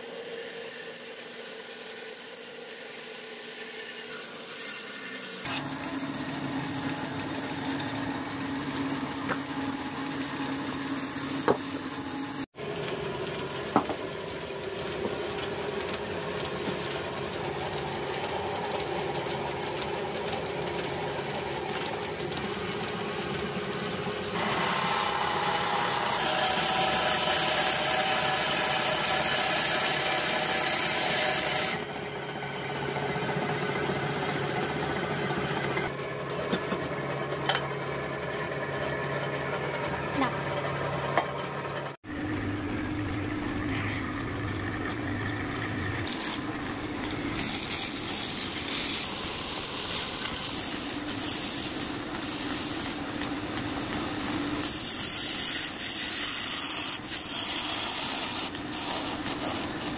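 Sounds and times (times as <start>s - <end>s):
band saw cutting wood: 0.0s - 12.5s, 14.8s - 36.0s, 43.4s - 59.9s
hand tool cutting spinning wood: 0.0s - 42.0s, 43.1s - 59.9s
wood lathe running: 0.0s - 59.9s.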